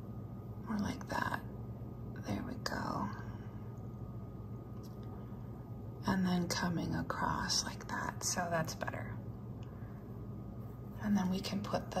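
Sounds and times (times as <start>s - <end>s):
low room hum: 0.0s - 12.0s
woman speaking softly: 0.6s - 1.5s, 2.1s - 3.4s, 6.0s - 9.2s, 10.9s - 12.0s.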